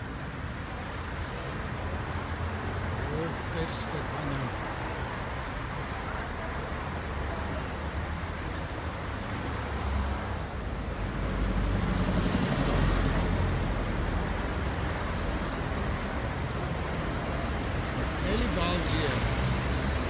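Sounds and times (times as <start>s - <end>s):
cars driving past: 1.0s - 20.0s.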